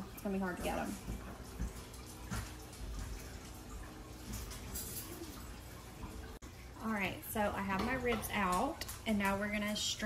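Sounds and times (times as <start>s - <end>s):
liquid dripping and splashing: 0.0s - 10.0s.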